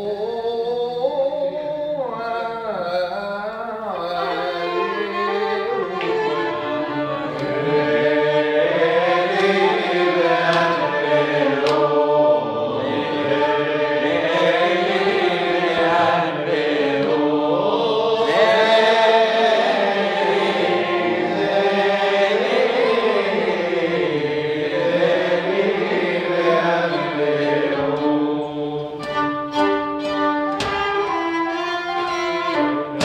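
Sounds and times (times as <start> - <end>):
violins: 3.8 - 33.0.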